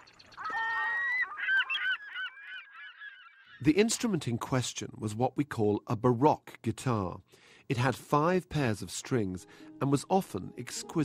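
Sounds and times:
seagull calling: 0:00.0 - 0:03.6.

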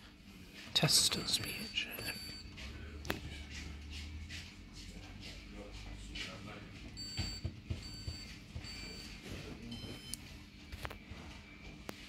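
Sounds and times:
short single-tone beeps: 0:01.6 - 0:02.5, 0:07.0 - 0:09.0.

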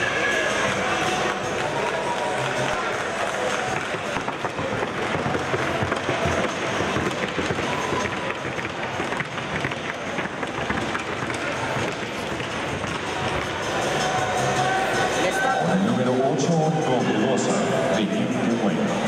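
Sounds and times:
background music: 0:00.0 - 0:19.0
crowd chatter: 0:00.0 - 0:19.0.

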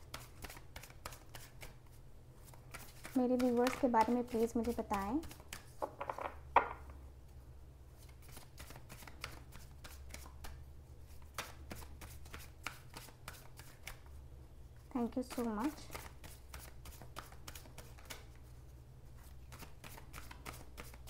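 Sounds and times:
cards being shuffled: 0:00.0 - 0:06.3, 0:08.0 - 0:14.1, 0:15.1 - 0:18.5, 0:19.2 - 0:21.0.

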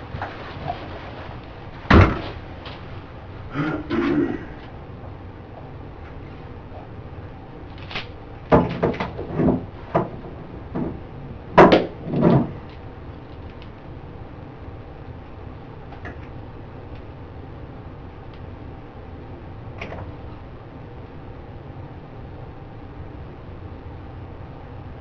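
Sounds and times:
room hum: 0:00.0 - 0:25.0
knocks and thuds on wooden desk: 0:08.5 - 0:11.0.

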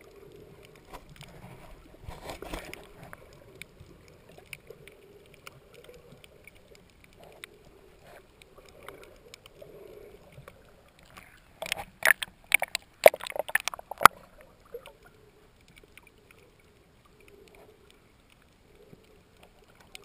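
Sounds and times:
sharp underwater clicks and crackles: 0:00.0 - 0:20.0
underwater rumble of moving water: 0:00.0 - 0:20.0.

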